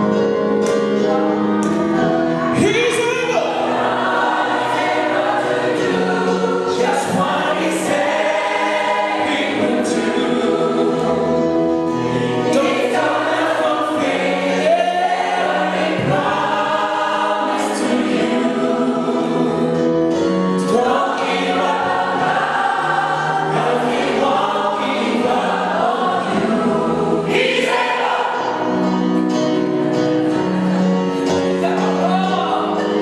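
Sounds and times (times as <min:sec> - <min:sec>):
electric keyboard: 0:00.0 - 0:33.0
gospel choir singing: 0:00.0 - 0:33.0.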